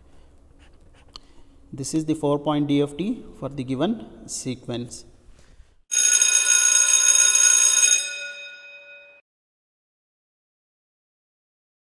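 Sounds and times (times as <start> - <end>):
loud electronic ringing tone: 5.9 - 9.2.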